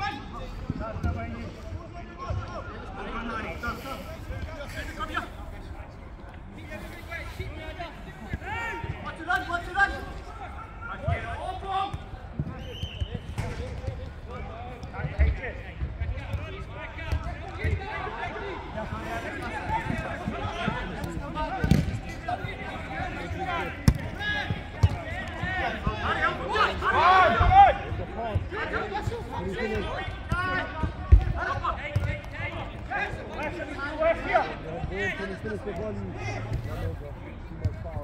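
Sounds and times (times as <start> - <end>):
players shouting: 6.8 - 13.7, 16.0 - 36.9
football being kicked: 21.6 - 21.9, 24.8 - 25.0, 31.9 - 32.3.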